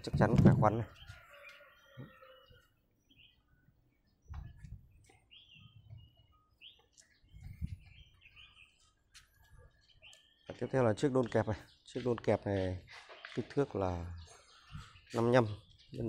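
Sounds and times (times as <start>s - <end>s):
bird chirps: 0.7s - 16.0s.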